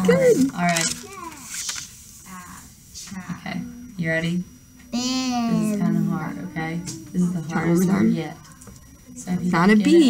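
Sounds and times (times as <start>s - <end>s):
child and adult talking softly: 0.0s - 1.6s, 4.9s - 9.5s
paper rustle: 0.7s - 2.0s.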